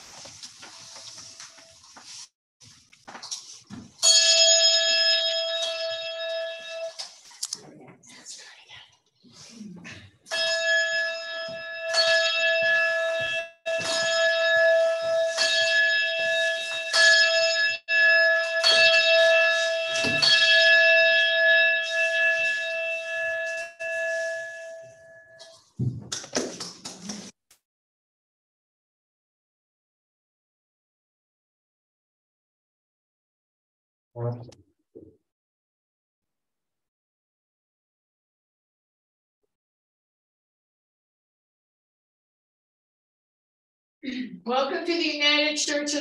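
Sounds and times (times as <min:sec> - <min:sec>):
singing bowl ringing: 0:04.0 - 0:07.0, 0:10.3 - 0:25.6.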